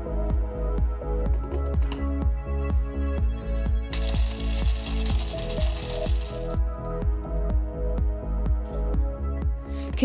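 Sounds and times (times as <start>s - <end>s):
background music with steady beat: 0.0s - 10.0s
hand blender grinding spices: 4.0s - 6.6s.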